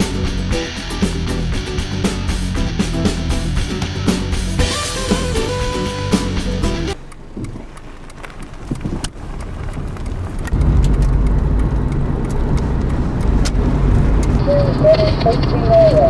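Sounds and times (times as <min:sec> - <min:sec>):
engine and tyre rumble: 0:00.0 - 0:04.7, 0:05.3 - 0:16.0.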